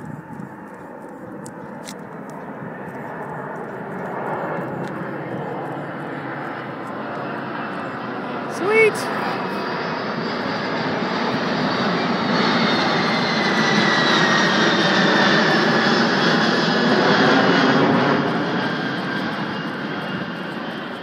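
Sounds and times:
jet engines roaring overhead: 0:00.0 - 0:21.0.

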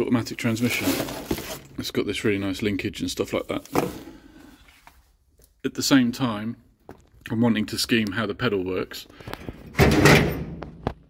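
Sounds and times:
loud thump with rattle: 0:09.8 - 0:10.9.

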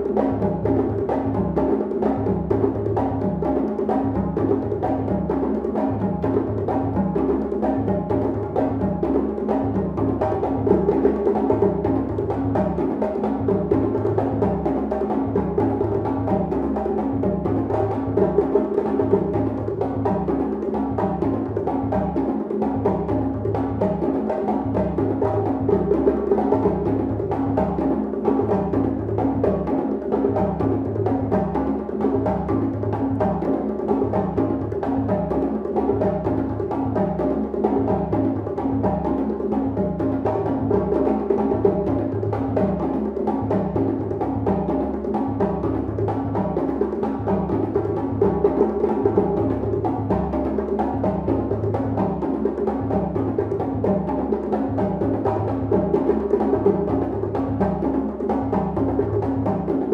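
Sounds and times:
hand drums playing rhythm: 0:00.0 - 0:59.9.

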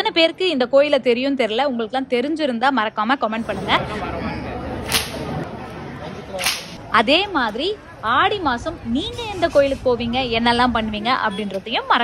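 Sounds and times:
crowd murmur: 0:03.4 - 0:09.9
whip cracks: 0:04.8 - 0:05.3, 0:06.4 - 0:06.8.

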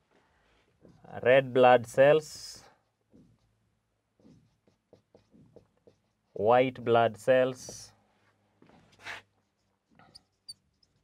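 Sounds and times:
marker writing on whiteboard: 0:00.6 - 0:01.5, 0:02.6 - 0:08.0, 0:08.7 - 0:11.0.

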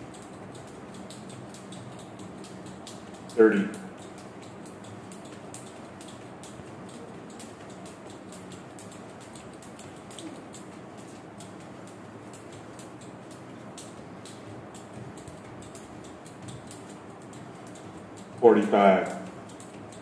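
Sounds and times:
skipping rope hiss: 0:00.0 - 0:20.0
skipping rope ticking on floor: 0:00.0 - 0:20.0.

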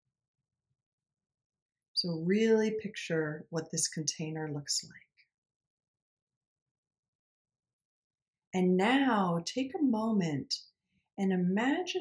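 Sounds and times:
woman's voice: 0:02.0 - 0:04.9, 0:08.6 - 0:10.6, 0:11.2 - 0:12.0.

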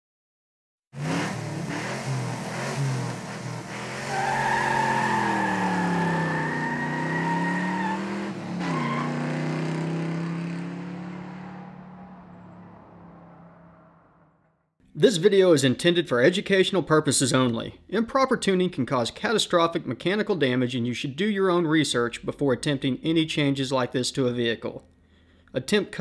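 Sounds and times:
car engine revving: 0:01.0 - 0:14.4.

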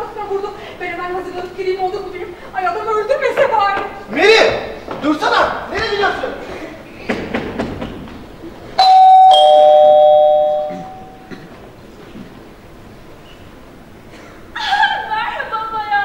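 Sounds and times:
two-note doorbell chime: 0:08.8 - 0:11.2.

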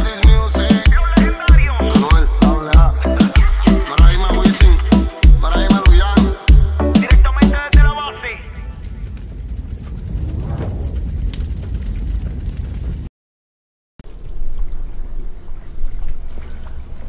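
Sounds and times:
low watery rumble: 0:08.6 - 0:13.1.

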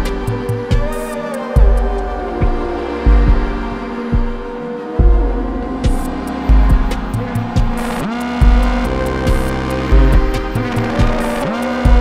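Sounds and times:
synth line sliding in pitch: 0:01.1 - 0:12.0
heavy low bass: 0:01.6 - 0:12.0.

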